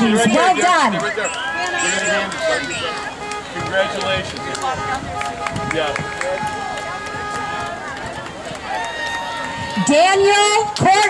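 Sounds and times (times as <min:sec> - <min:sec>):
people talking indistinctly: 0:00.0 - 0:08.7.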